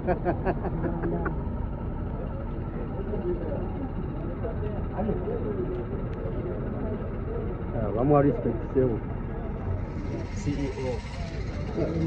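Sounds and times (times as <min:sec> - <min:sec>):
people talking indistinctly: 0:00.6 - 0:12.0.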